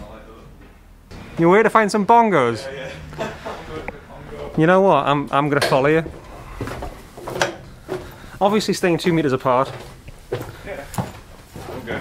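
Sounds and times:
footsteps on wooden stairs: 0:05.9 - 0:08.5, 0:09.1 - 0:12.0.

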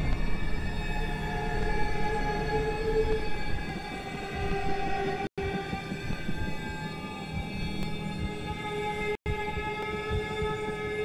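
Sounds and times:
dissonant horn-like drone: 0:00.0 - 0:11.0.

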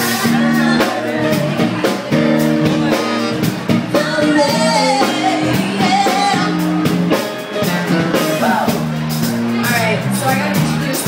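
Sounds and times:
woman singing: 0:00.0 - 0:02.9, 0:03.9 - 0:08.8
live band playing: 0:00.0 - 0:11.0.

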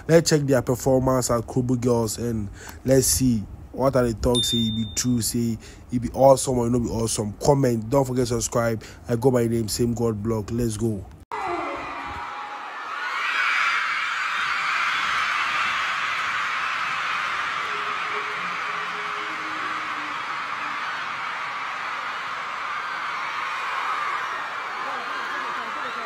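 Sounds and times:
crowd of girls screaming: 0:11.3 - 0:26.0.

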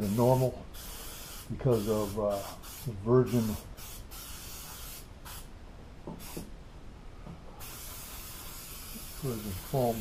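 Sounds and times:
aerosol spray can hissing: 0:00.0 - 0:05.5, 0:06.1 - 0:06.5, 0:07.6 - 0:10.0.

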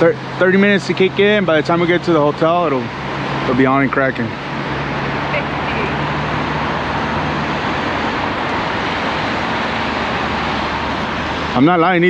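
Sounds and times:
low engine hum: 0:00.0 - 0:12.0
road traffic noise: 0:00.0 - 0:12.0.

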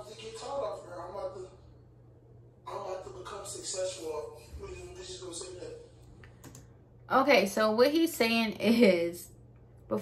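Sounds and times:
keyboard clicks: 0:06.2 - 0:06.7.

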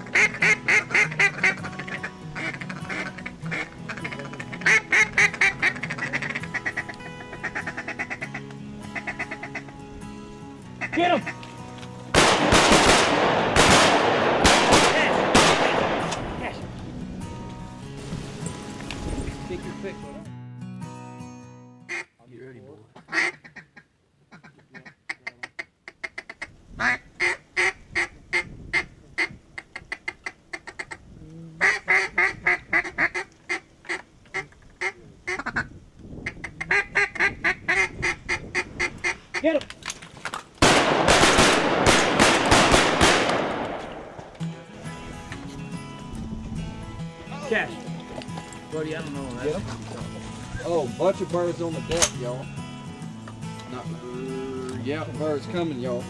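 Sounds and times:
duck quacking: 0:00.0 - 0:09.8, 0:10.8 - 0:11.4, 0:21.9 - 0:22.1, 0:23.0 - 0:31.0, 0:31.6 - 0:39.5.

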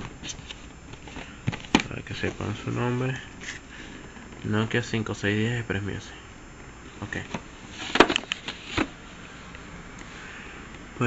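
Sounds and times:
cardboard box rustling: 0:00.0 - 0:02.8, 0:07.2 - 0:09.1.

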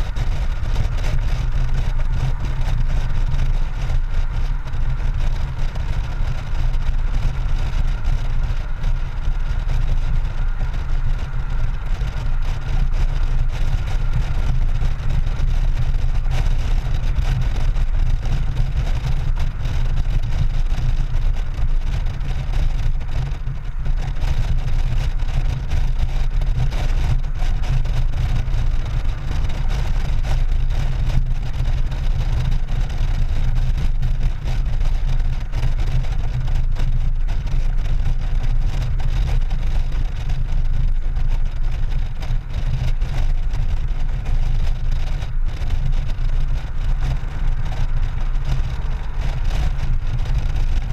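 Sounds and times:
motorcycle engine drone: 0:00.0 - 0:50.9
tyres on road: 0:00.0 - 0:50.9
wind rushing over microphone: 0:00.0 - 0:50.9.

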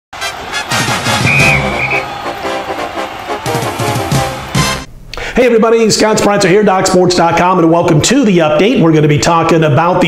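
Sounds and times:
full band music: 0:00.6 - 0:04.9.

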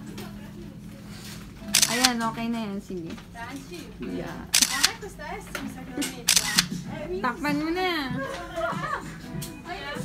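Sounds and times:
people laughing: 0:08.0 - 0:09.3.

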